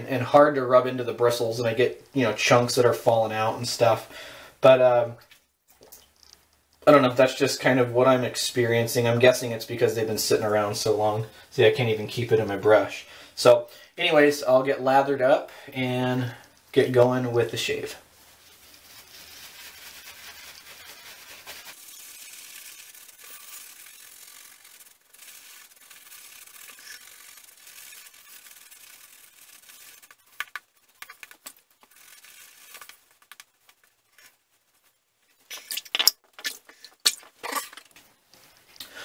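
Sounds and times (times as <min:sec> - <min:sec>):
shaving brush scrubbing lather: 0:17.5 - 0:30.4.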